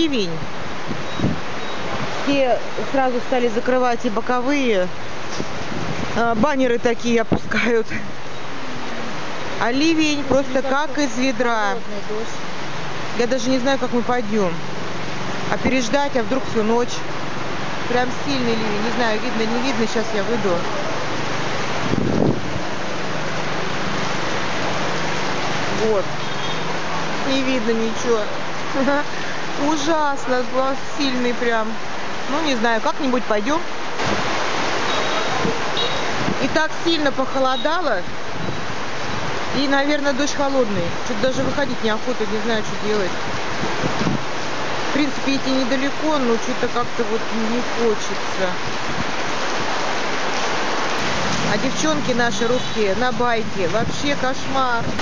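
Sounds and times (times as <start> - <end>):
heavy rain hiss: 0.0 - 55.0.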